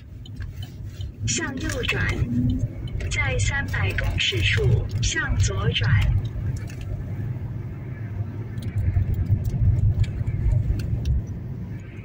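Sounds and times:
car engine rumble: 0.0s - 12.0s
tyres on road: 0.0s - 12.0s.

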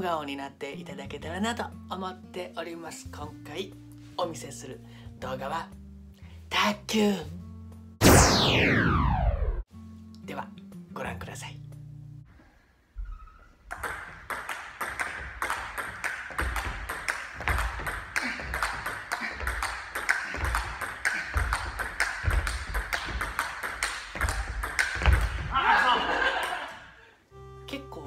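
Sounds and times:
table tennis ball clicking: 13.7s - 25.4s.

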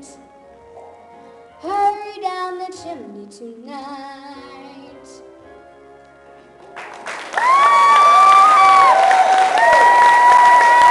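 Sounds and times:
audience clapping: 6.6s - 10.9s
drawn-out cheering voices: 7.4s - 10.9s.

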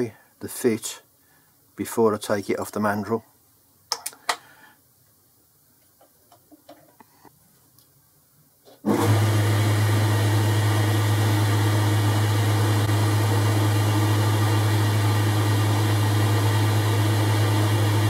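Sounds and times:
lathe running with low hum: 8.9s - 18.0s.

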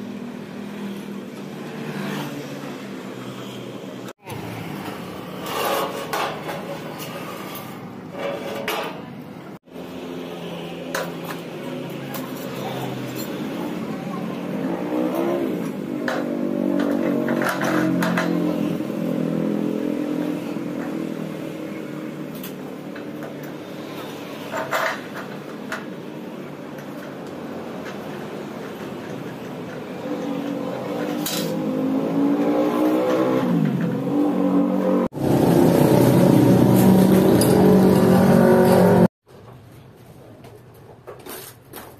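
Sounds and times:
metal bracket clinking and scraping: 4.9s - 9.1s.

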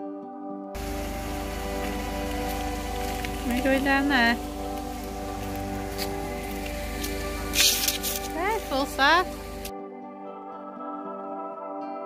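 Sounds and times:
soft background music: 0.0s - 12.0s
steady rain hiss: 0.8s - 9.7s.

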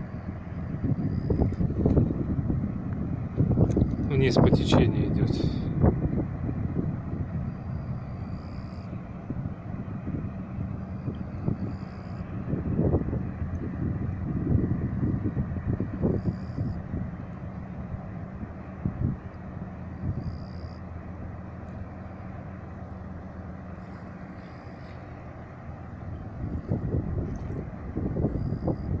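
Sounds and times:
low engine hum: 0.0s - 29.0s
wind buffeting microphone: 0.0s - 29.0s.

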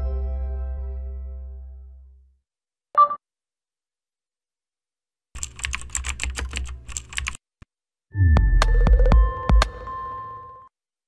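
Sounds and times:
keyboard typing: 5.4s - 7.4s.

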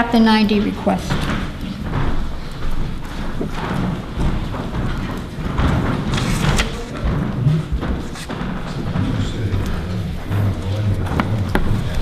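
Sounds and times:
footsteps on floor: 0.4s - 12.0s.

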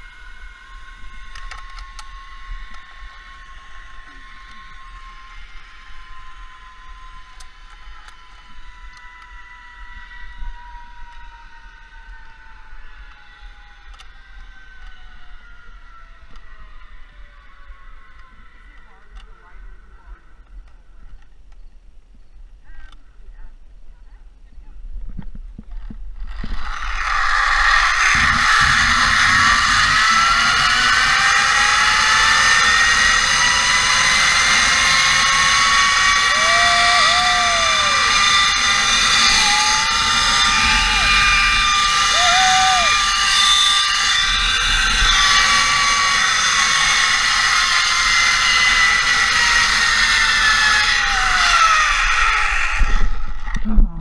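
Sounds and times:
zipline pulleys running on cable: 0.0s - 20.6s, 25.7s - 53.6s
loud rising whine: 26.2s - 54.0s
wind rushing over microphone: 28.0s - 31.2s.

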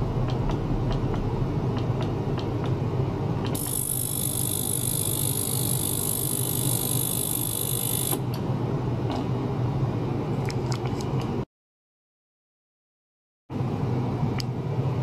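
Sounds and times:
steady low hum: 0.0s - 7.0s
ultrasonic cleaner whine: 0.0s - 10.2s.

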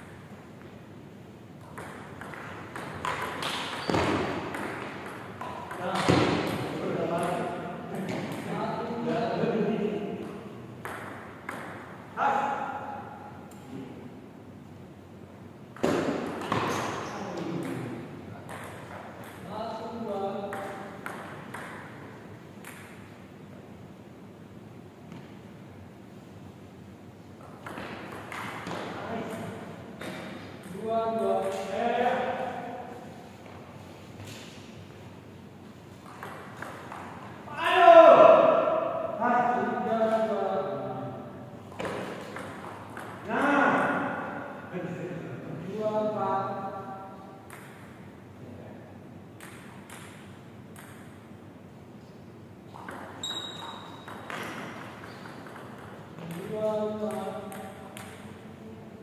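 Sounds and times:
table tennis ball knocking: 1.6s - 8.5s, 10.2s - 12.0s, 15.8s - 19.5s, 20.4s - 22.0s, 27.4s - 31.7s, 36.0s - 37.3s, 41.7s - 43.3s, 47.4s - 48.0s, 49.4s - 51.2s, 52.8s - 58.3s
man shouting: 37.5s - 38.8s
high squeak: 53.2s - 54.1s.

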